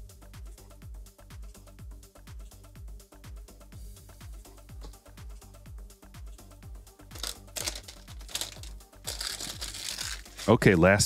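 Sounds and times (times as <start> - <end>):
electronic music with kick drum: 0.0 - 11.0
cardboard box rustling and crinkling: 7.2 - 10.6.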